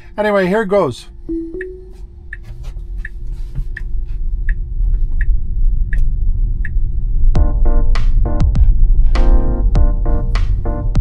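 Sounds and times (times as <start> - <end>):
low road rumble: 0.0 - 11.0
two-note rising chime: 1.3 - 2.0
turn signal ticking: 1.3 - 8.8.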